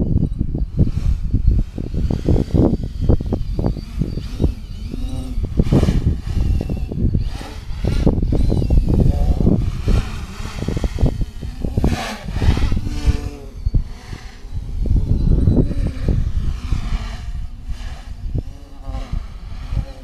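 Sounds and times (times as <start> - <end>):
drone motors whining: 0.0 - 20.0
wind buffeting microphone: 0.0 - 20.0.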